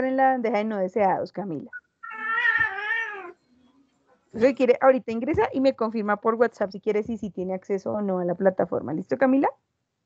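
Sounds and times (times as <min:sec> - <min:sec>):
animal call: 0:02.0 - 0:03.4.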